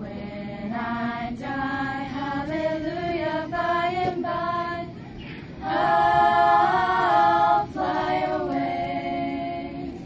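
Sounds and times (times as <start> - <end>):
women singing together: 0.0 - 10.0.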